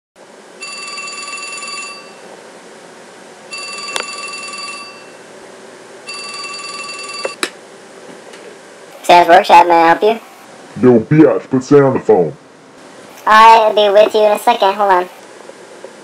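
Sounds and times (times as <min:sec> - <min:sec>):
telephone ringing: 0:00.6 - 0:02.2, 0:03.5 - 0:05.2, 0:06.1 - 0:07.4.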